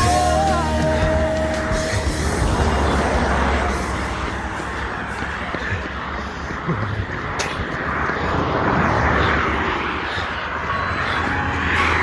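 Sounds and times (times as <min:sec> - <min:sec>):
low traffic rumble: 0:00.0 - 0:12.0
vehicle passing on road: 0:00.0 - 0:12.0.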